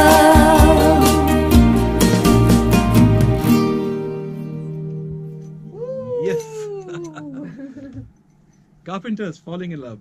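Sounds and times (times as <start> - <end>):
person's drawn-out exclamation: 5.7 - 7.4.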